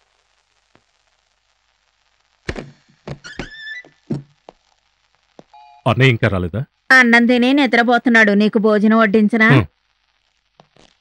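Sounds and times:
door squeak: 3.1 - 4.3.

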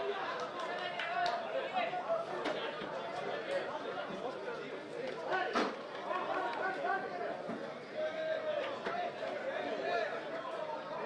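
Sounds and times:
crowd voices chattering: 0.0 - 11.0.

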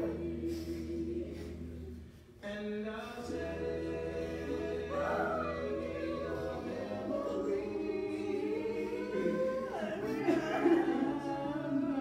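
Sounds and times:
choir singing held notes: 3.0 - 12.0.

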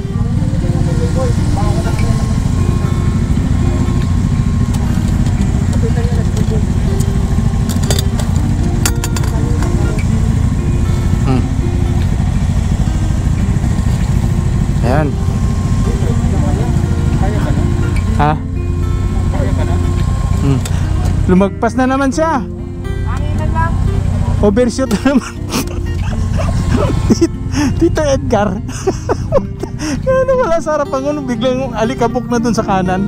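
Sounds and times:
motorcycle engine idling: 0.0 - 33.0.

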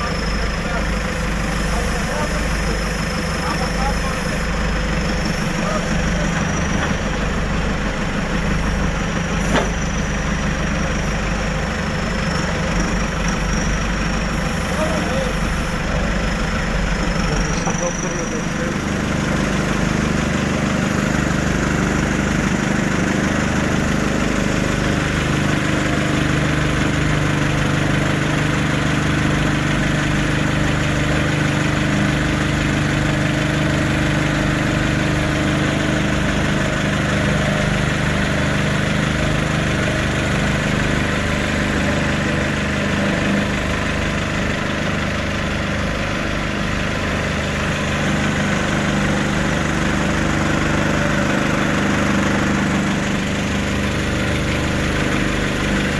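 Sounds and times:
engine idling: 0.0 - 55.9.

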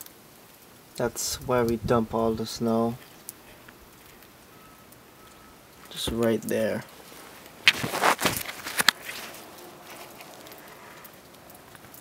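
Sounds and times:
outdoor background hiss: 0.0 - 12.0
man's voice: 1.0 - 3.0, 5.9 - 6.9.

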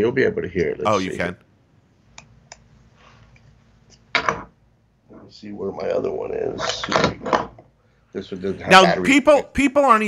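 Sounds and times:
faint low hum: 0.0 - 10.0
person speaking a word: 0.9 - 1.4.

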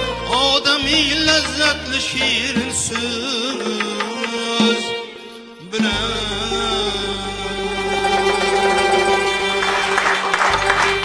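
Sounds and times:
man singing ornamented line: 0.0 - 9.6
sustained instrument tones: 0.0 - 11.0.

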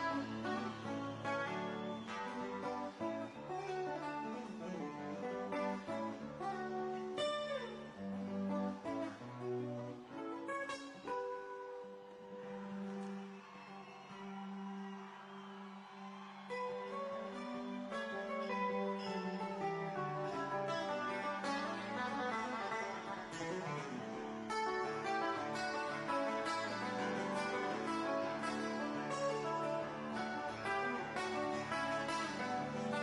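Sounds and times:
fingerpicked classical guitar: 0.0 - 33.0.

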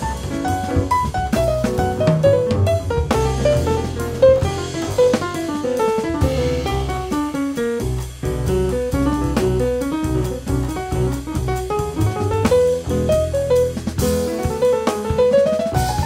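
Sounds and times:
double bass: 0.0 - 16.0
drum kit: 0.0 - 16.0
piano: 0.0 - 16.0.

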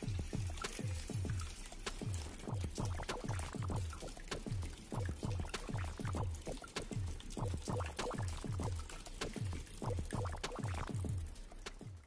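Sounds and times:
fountain water trickling: 0.0 - 12.0
water plops: 0.0 - 12.0.

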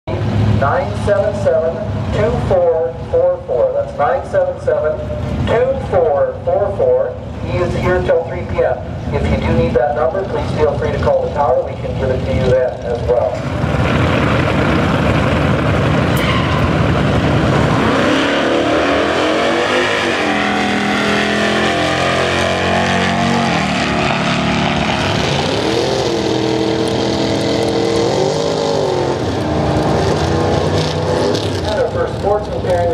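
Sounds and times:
drag racing cars accelerating: 0.1 - 32.9.

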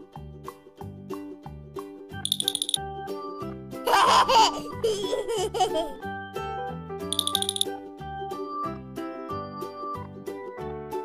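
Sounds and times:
light children's music: 0.0 - 11.0
baby giggling: 3.9 - 6.0.

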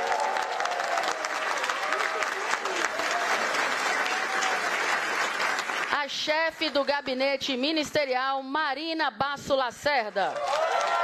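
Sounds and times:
audience applauding: 0.0 - 7.1, 10.3 - 11.0.

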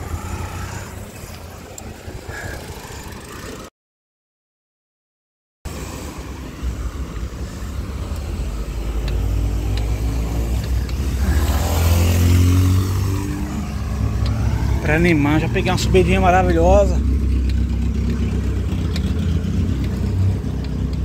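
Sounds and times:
motor vehicle engine passing: 0.0 - 3.7, 5.7 - 21.0.

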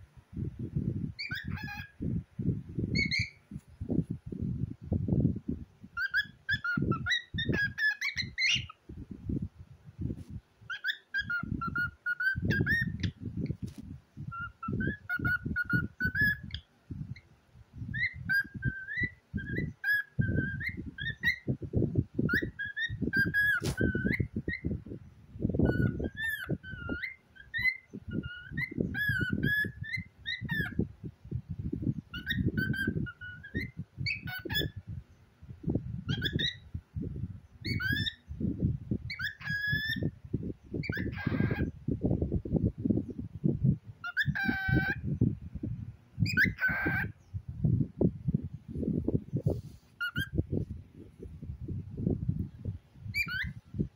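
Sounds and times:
cockatiel whistled chattering: 1.2 - 2.0, 3.0 - 3.4, 6.0 - 8.8, 10.7 - 13.2, 14.3 - 16.6, 18.0 - 21.5, 22.3 - 24.6, 25.7 - 30.8, 32.2 - 34.7, 36.1 - 36.6, 37.6 - 38.2, 39.1 - 40.1, 40.8 - 41.7, 44.0 - 45.0, 46.2 - 47.1, 50.0 - 50.4, 53.2 - 53.6.

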